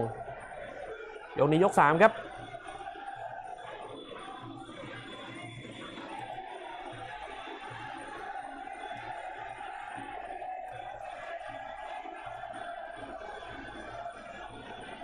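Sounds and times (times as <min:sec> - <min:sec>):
crowd noise: 0:00.0 - 0:15.0.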